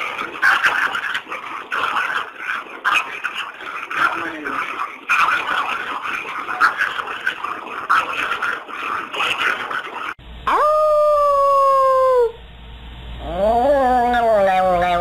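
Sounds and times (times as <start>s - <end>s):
indistinct noise: 0.0s - 15.0s
small dog howling: 10.4s - 12.4s.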